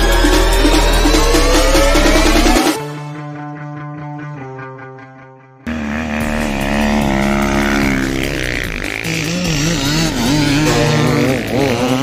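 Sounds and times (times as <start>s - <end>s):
music: 0.0s - 12.0s
dirt bike engine revving: 5.7s - 12.0s.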